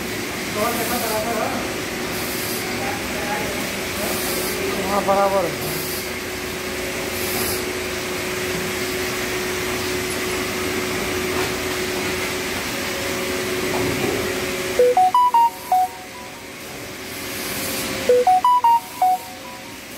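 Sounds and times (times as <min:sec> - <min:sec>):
electronic beeping melody: 0:14.8 - 0:16.6, 0:18.1 - 0:19.9.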